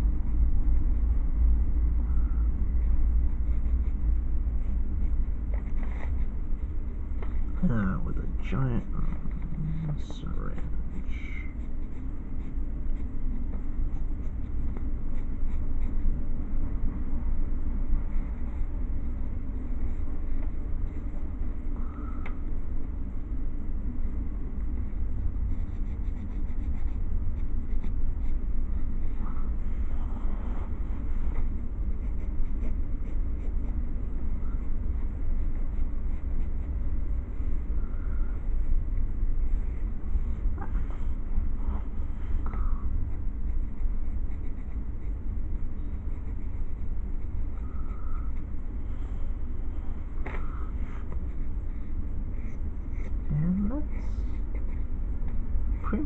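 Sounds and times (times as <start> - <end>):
steady low hum: 0.0 - 56.0
pencil scratching on paper: 2.2 - 16.3, 24.7 - 29.6, 31.0 - 49.2, 53.9 - 55.0.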